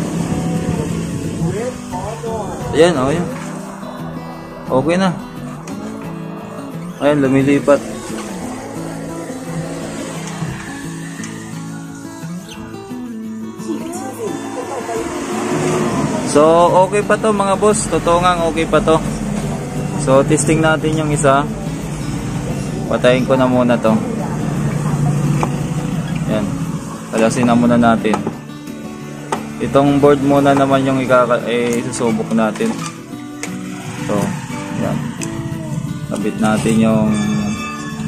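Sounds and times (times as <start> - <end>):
music through tv speaker: 0.0 - 38.0.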